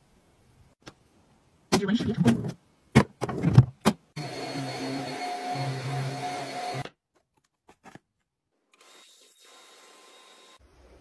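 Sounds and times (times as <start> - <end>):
electric drawer motor running: 4.2 - 6.9.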